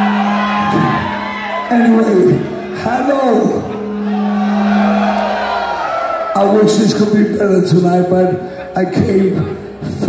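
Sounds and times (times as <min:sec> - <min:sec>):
concert crowd noise: 0:00.0 - 0:10.0.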